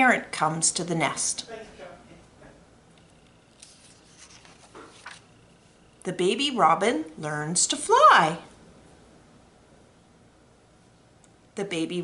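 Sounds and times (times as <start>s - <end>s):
book page rustling: 3.5s - 5.3s.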